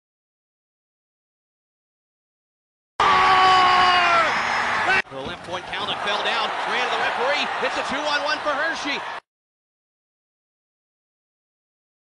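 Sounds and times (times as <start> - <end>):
crowd cheering: 3.0 - 9.3.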